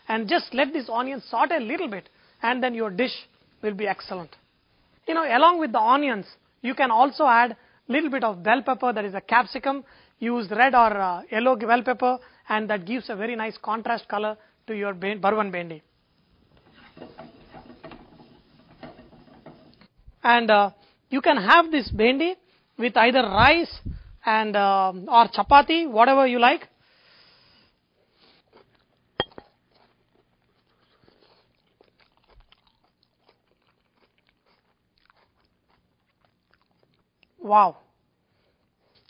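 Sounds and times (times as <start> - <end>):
person quietly chewing: 28.1 - 37.4, 38.5 - 39.0.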